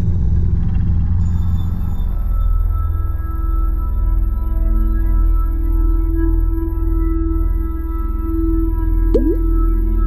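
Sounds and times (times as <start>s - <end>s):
faint high tones: 9.2s - 9.4s.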